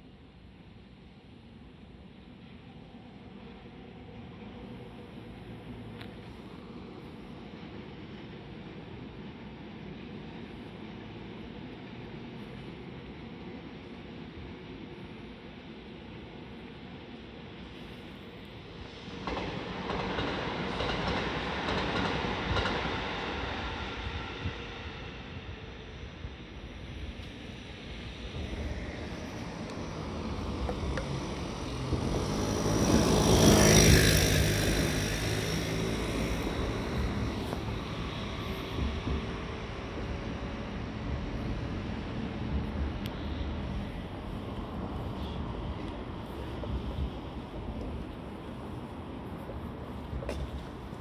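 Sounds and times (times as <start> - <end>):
electric train passing: 0.0 - 51.0.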